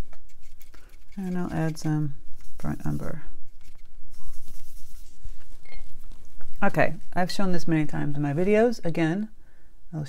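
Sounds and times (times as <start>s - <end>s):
paintbrush tapping and scrubbing: 0.0s - 7.2s
steady low hum: 0.0s - 10.0s.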